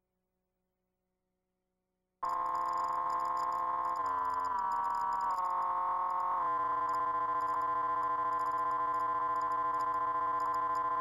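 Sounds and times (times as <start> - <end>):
fainter electronic tones: 2.2 - 11.0
steady electronic test tone: 2.2 - 11.0.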